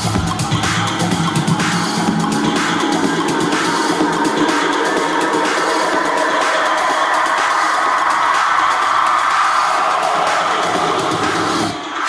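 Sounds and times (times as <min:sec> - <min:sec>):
techno build-up hissing wash: 0:00.0 - 0:12.0.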